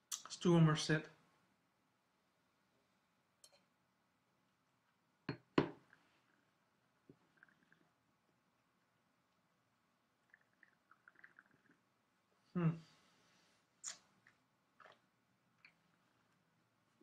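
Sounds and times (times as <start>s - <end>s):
slurping and swishing wine: 10.2s - 11.9s.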